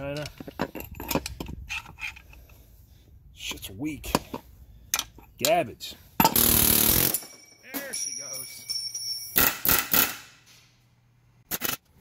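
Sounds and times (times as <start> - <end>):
metal parts clicking and knocking: 0.0 - 2.4.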